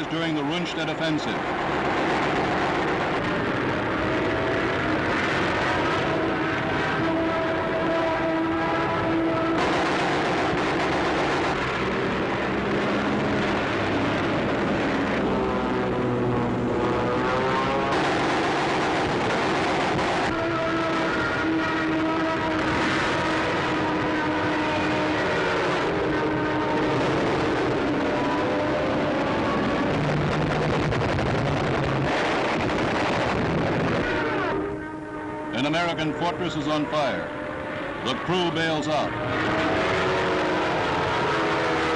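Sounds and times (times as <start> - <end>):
propeller aircraft engines droning: 0.0 - 41.9.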